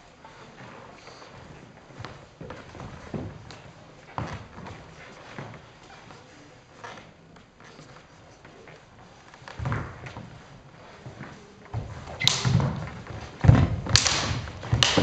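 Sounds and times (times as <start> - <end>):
footsteps on wooden floor: 0.6 - 6.2, 8.6 - 15.0.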